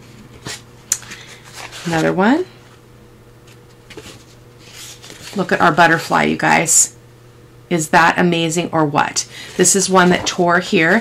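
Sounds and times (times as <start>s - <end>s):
paper crackle: 0.4s - 2.2s, 3.5s - 5.8s
paper sheets rustling: 0.4s - 2.3s, 3.5s - 6.1s, 9.5s - 11.0s.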